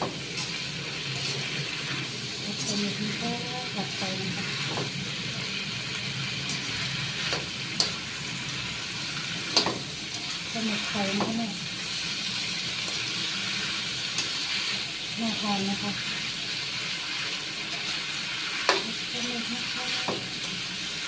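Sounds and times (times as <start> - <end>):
squid sizzling in hot oil: 0.0 - 21.0
metal spatula scraping a wok: 0.1 - 5.0, 6.3 - 8.0.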